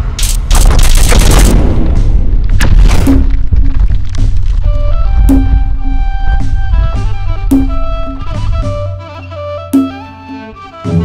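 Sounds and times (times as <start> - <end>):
sharp boom hits: 0.0 - 8.4.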